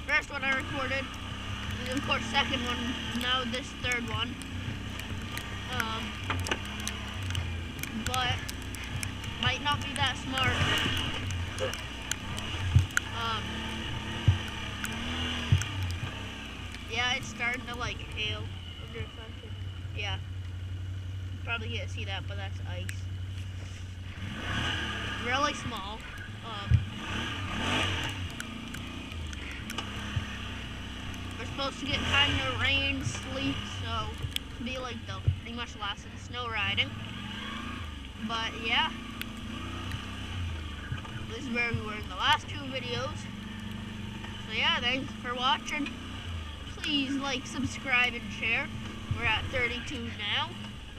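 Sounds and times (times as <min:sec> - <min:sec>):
quad bike engine running: 0:00.0 - 0:50.9.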